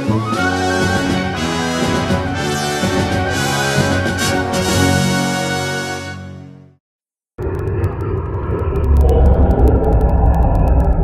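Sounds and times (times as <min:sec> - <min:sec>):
loud deep rumble: 0:07.4 - 0:11.0.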